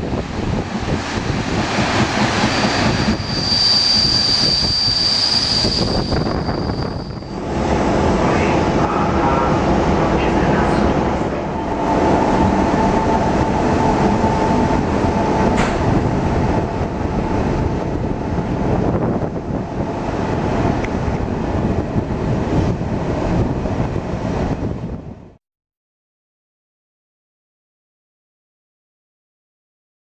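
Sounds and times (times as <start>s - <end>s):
train wheels rumbling on rails: 0.0s - 25.2s.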